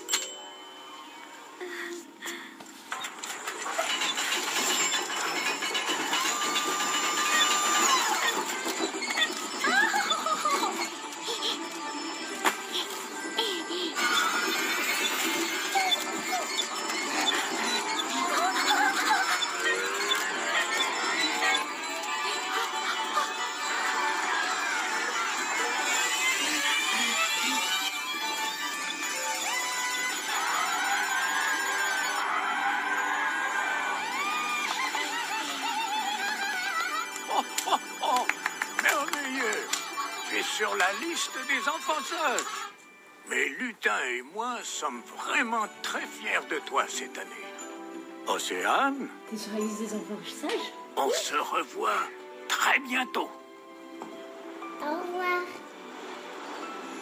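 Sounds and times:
festive background music: 0.0s - 57.0s
mechanical whirring with rattles: 2.9s - 37.7s
high-pitched cheering shout: 30.3s - 35.7s.

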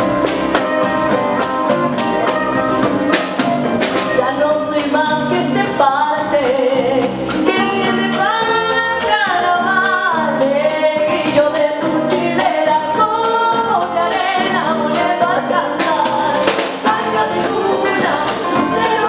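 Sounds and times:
folk band playing: 0.0s - 19.0s
woman singing: 4.0s - 19.0s.

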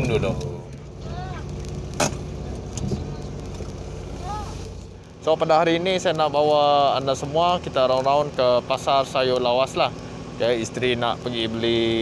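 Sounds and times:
car engine running low: 0.0s - 12.0s.

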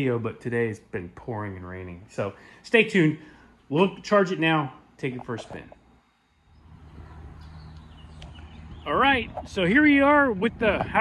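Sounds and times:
man talking: 0.0s - 5.8s, 8.8s - 11.0s.

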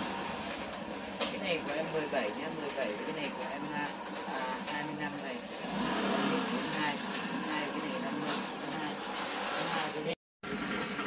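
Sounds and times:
people talking: 1.3s - 5.4s, 6.1s - 9.0s.

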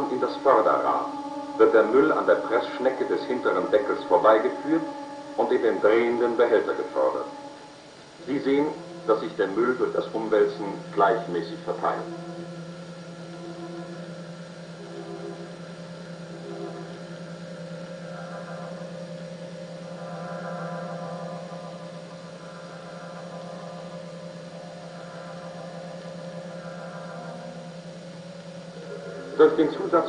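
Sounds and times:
faint sustained tones: 0.0s - 30.0s
steady low hum: 0.0s - 30.0s.

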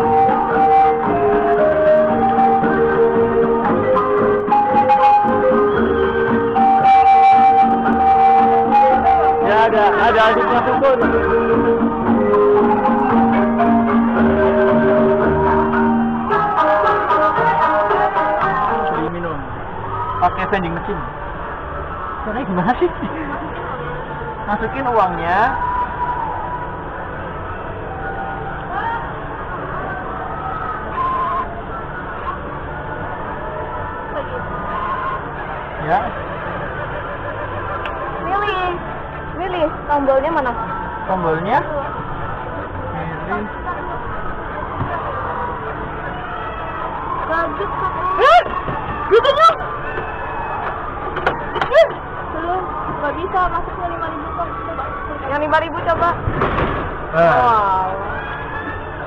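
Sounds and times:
people's voices: 0.0s - 27.5s, 28.3s - 59.0s
distant crowd chatter: 0.0s - 59.0s
outdoor background noise: 0.0s - 59.0s.

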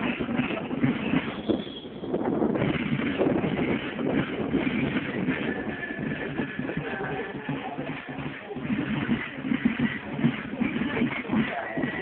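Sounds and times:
pulsing drums: 0.0s - 12.0s.

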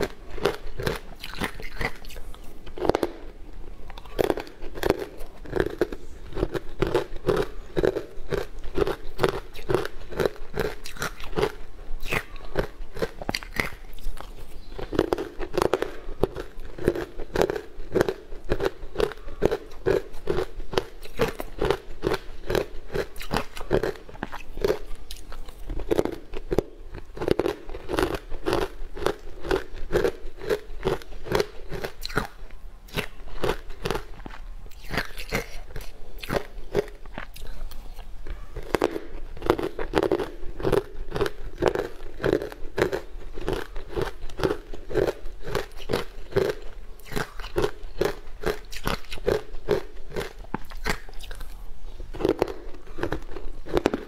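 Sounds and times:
crunching and chewing ice block: 0.0s - 54.0s.

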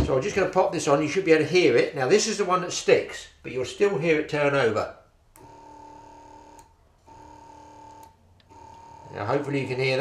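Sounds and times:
electric pump motor humming: 5.4s - 9.9s.

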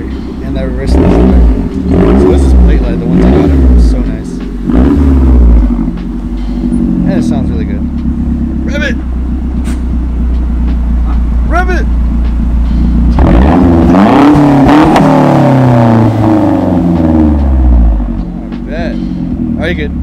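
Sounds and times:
car engine idling and revving: 0.0s - 20.0s.

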